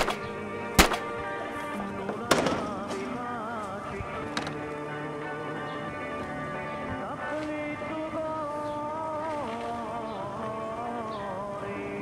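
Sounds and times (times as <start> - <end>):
sharp gunshot: 0.0 - 0.2, 0.8 - 1.2, 2.3 - 2.8
background music with wavering melody: 0.0 - 12.0
smaller cracks: 0.8 - 1.2, 2.1 - 4.8.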